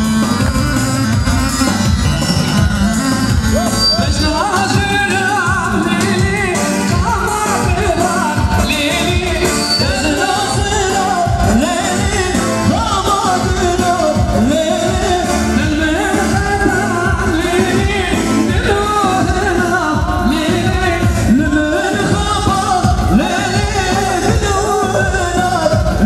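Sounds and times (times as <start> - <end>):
loud band accompaniment: 0.0 - 26.0.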